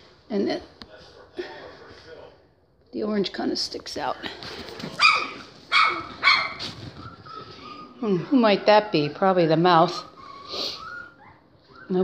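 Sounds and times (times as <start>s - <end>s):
puppy yapping barks: 5.0s - 6.7s.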